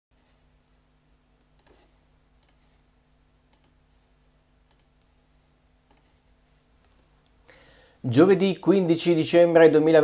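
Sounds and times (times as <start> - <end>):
low steady hum: 0.2 - 10.0.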